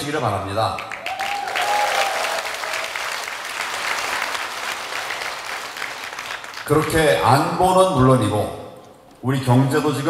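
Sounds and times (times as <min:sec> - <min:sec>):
audience applauding: 0:00.8 - 0:07.2.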